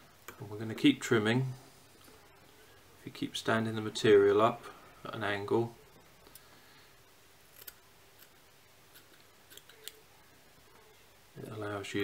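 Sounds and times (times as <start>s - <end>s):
small scissors snipping: 7.5s - 8.3s.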